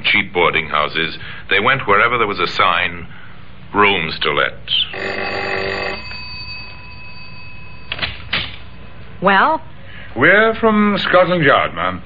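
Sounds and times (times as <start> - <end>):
doorbell ringing tone: 5.0 - 9.1.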